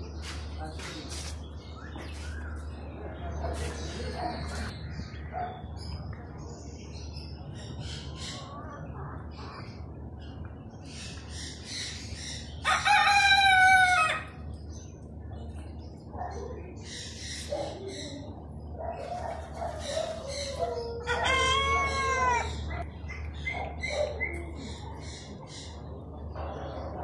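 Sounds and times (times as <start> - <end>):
rooster crowing: 12.6 - 14.4, 21.0 - 22.6.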